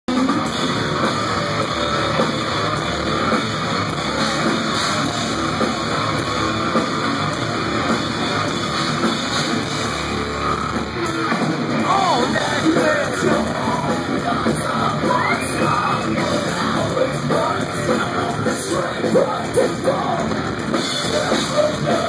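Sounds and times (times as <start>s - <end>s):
distorted electric guitar: 0.1s - 22.0s
drums: 0.1s - 22.0s.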